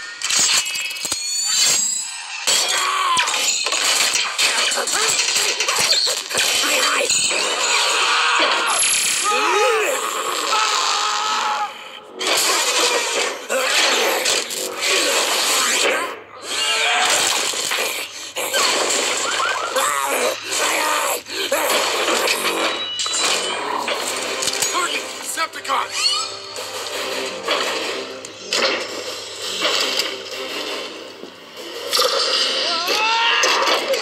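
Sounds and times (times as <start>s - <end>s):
crashing and breaking effects: 12.2s - 16.0s, 17.0s - 19.8s, 21.6s - 25.5s, 26.4s - 34.0s.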